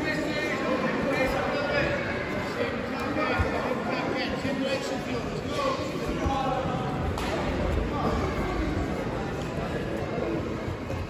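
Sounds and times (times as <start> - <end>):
voices echoing in hall: 0.0 - 11.0.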